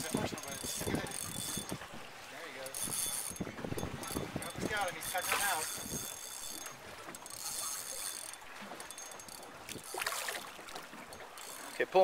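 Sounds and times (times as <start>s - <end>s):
fishing reel clicking: 0.0s - 1.8s, 2.6s - 12.0s.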